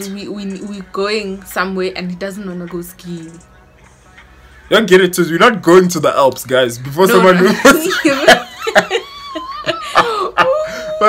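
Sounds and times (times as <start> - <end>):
man laughing: 7.1 - 11.0
woman wailing laugh: 7.2 - 11.0.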